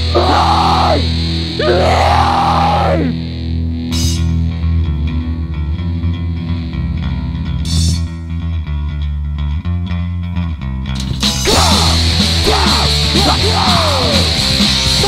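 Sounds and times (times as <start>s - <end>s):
shouted vocal: 0.0s - 3.2s, 11.4s - 15.0s
heavy rock band: 0.0s - 8.2s, 11.0s - 15.0s.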